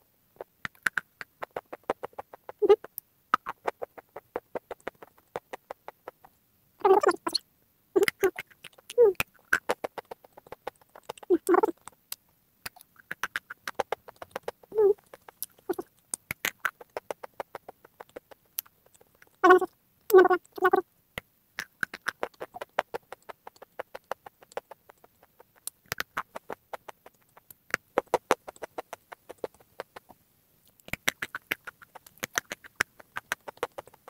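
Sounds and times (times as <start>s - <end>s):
mouth crunching and chewing: 0.4s - 7.4s, 8.0s - 20.8s, 21.6s - 30.1s, 30.7s - 34.0s.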